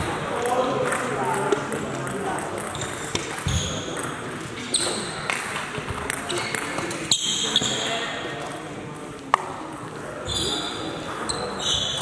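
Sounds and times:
murmur of voices echoing: 0:00.0 - 0:12.0.

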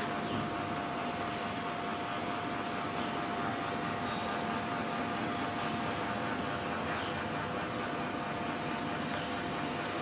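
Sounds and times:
background hiss and hum: 0:00.0 - 0:10.0
faint constant tone: 0:00.0 - 0:10.0.

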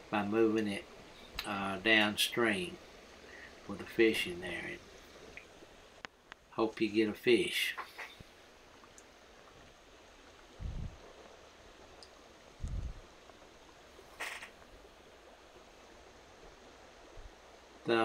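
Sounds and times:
dull low thumps: 0:10.6 - 0:11.1, 0:12.6 - 0:13.1
creek flowing over riffle: 0:11.1 - 0:18.0
brief hiss: 0:14.1 - 0:14.6.

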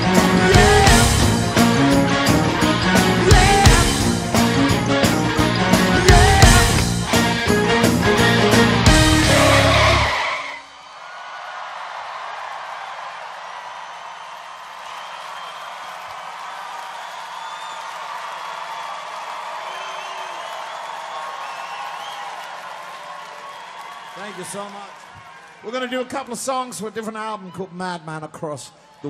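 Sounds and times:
band playing last chord: 0:00.0 - 0:10.2
crowd cheering and applauding: 0:00.0 - 0:27.6
whistles from crowd: 0:13.9 - 0:24.6.

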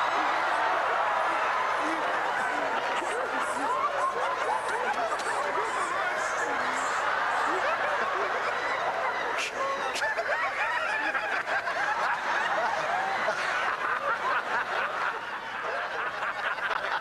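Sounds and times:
crowd laughing: 0:00.0 - 0:17.0.

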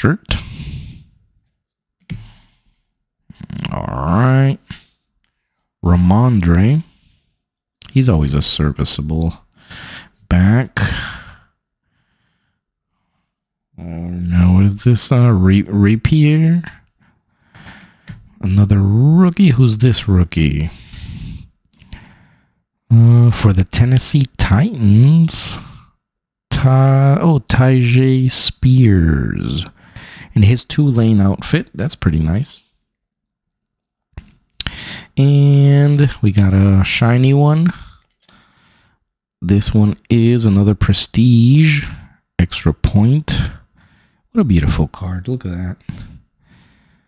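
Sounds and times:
man speaking: 0:00.0 - 0:00.6, 0:03.3 - 0:04.9, 0:05.8 - 0:07.0, 0:07.8 - 0:09.5, 0:10.3 - 0:11.4, 0:13.8 - 0:16.8, 0:18.4 - 0:20.9, 0:22.9 - 0:25.8, 0:26.5 - 0:32.7, 0:34.6 - 0:38.2, 0:39.4 - 0:43.7, 0:44.3 - 0:46.1.

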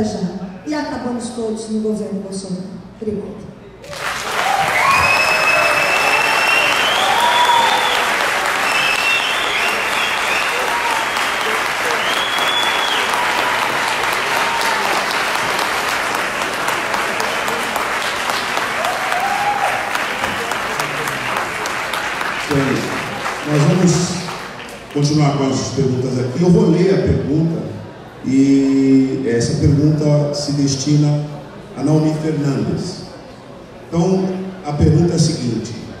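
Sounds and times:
audience applauding: 0:03.8 - 0:25.4.

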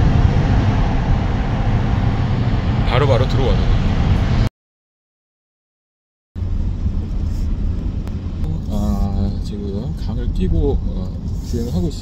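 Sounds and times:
car road and wind noise: 0:00.0 - 0:04.5, 0:06.4 - 0:12.0.

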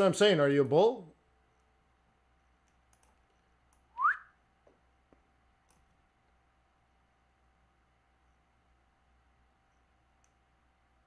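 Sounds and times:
faint clicks: 0:02.6 - 0:03.9, 0:05.1 - 0:06.0, 0:09.7 - 0:10.4
rising whistle: 0:04.0 - 0:04.4.

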